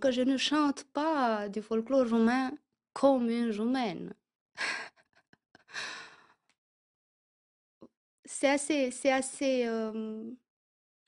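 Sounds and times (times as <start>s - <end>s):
woman breathing: 5.6s - 6.5s.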